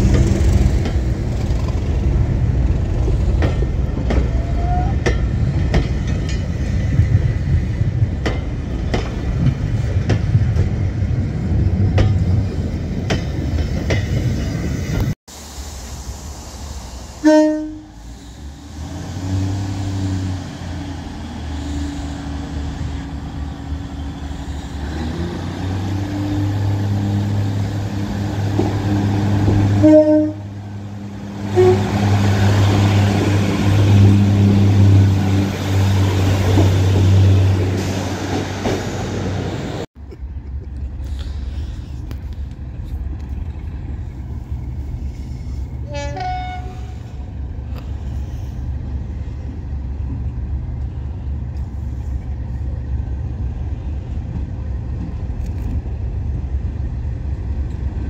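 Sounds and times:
diesel locomotive engine running: 0.0s - 58.0s
short horn toots: 45.8s - 47.1s.

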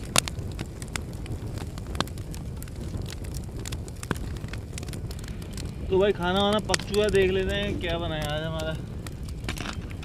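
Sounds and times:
campfire crackling: 0.0s - 10.0s
low steady rumble: 0.0s - 10.0s.

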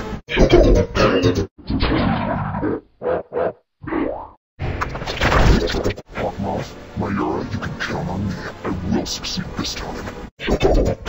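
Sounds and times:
distorted spoken word: 0.3s - 1.5s, 5.8s - 11.0s.

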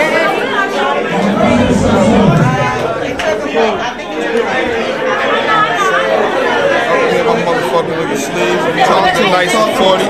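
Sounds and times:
overlapping chatter: 1.0s - 4.0s.

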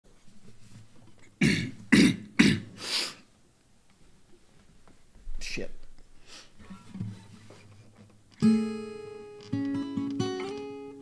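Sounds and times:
man coughing: 1.4s - 2.8s.

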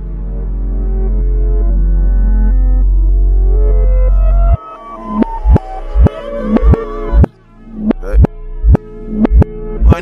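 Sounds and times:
deep bass note with synth tones: 0.0s - 10.0s.

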